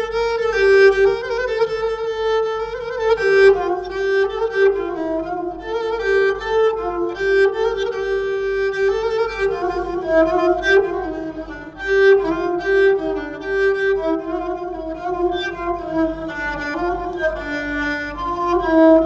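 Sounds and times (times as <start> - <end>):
bowed spike fiddle folk melody: 0.0 - 19.0.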